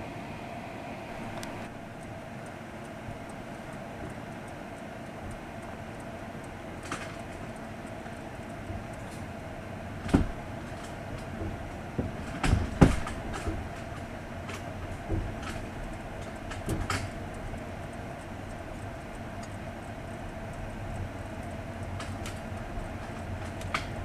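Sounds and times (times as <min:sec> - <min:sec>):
train running hum: 0:00.0 - 0:24.0
wheels knocking on track: 0:10.0 - 0:17.2.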